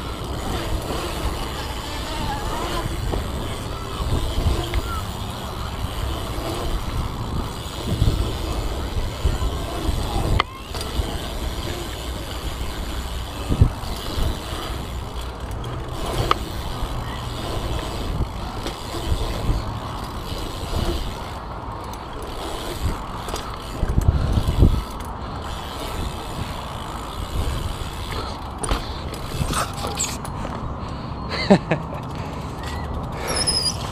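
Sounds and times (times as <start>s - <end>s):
wind buffeting microphone: 0.0s - 28.3s
bike knocking: 0.0s - 30.6s
tyres rolling on concrete: 0.0s - 33.9s.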